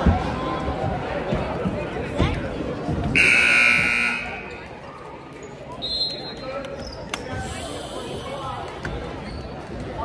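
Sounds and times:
referee's whistle: 0:03.2 - 0:04.4
scoreboard horn blaring: 0:03.2 - 0:04.5.

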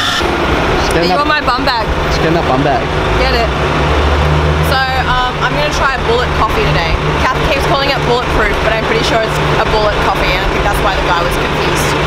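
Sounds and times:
truck engine idling: 0:00.0 - 0:12.0
voices: 0:00.0 - 0:12.0.

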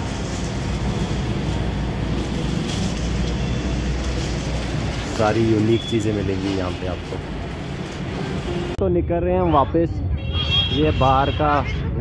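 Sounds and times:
busy street rumble: 0:00.0 - 0:12.0.

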